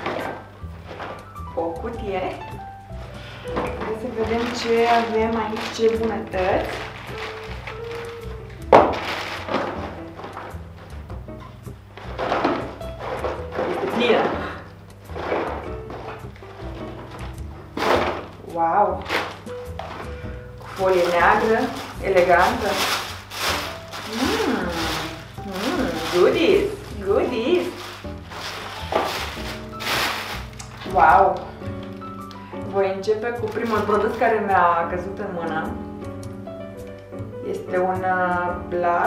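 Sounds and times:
background music: 0:00.0 - 0:39.0
cardboard box rustling: 0:03.8 - 0:10.9, 0:19.0 - 0:26.8, 0:27.5 - 0:31.0
cardboard box thunk: 0:17.2 - 0:18.3.

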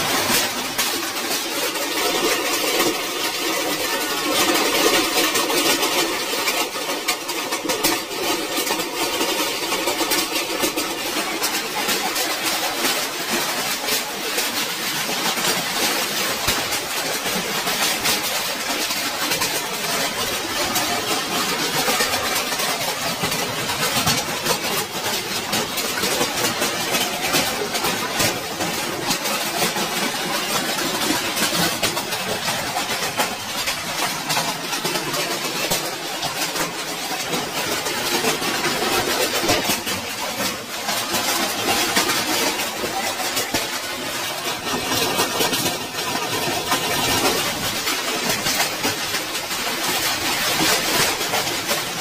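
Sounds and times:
hail pelting tin roof: 0:00.0 - 0:52.0.

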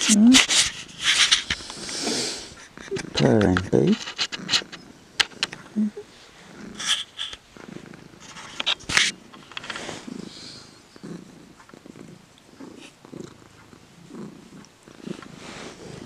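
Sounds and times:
cat purring: 0:01.4 - 0:16.0.

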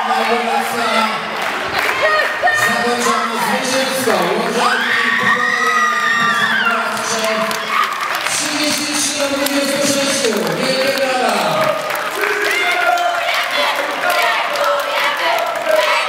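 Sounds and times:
women cheering and shouting: 0:00.0 - 0:03.7.

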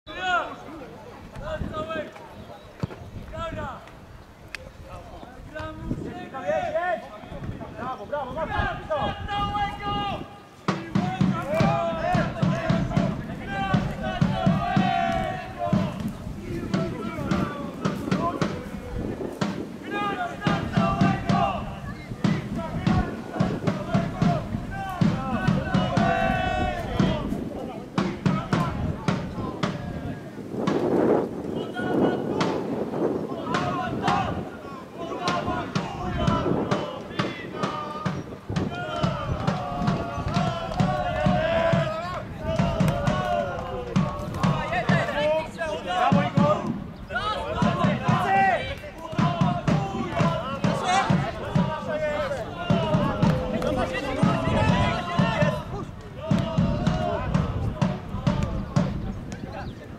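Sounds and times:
people shouting: 0:08.4 - 0:18.9, 0:19.8 - 0:30.2, 0:31.6 - 0:58.7.

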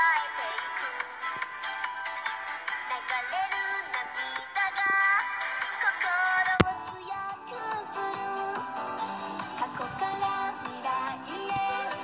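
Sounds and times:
pop song with female vocals: 0:00.0 - 0:12.0.

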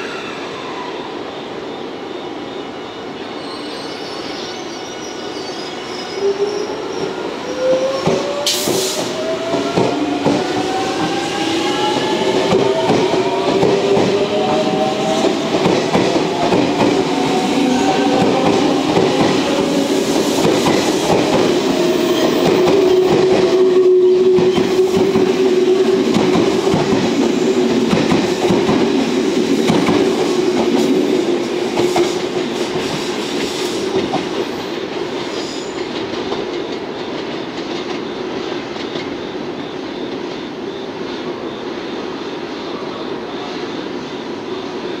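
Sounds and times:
electric train whine: 0:00.0 - 0:45.0.

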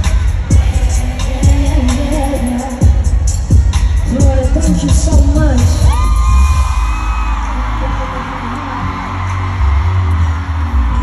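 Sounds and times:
r and b song over sound system: 0:00.0 - 0:11.0.

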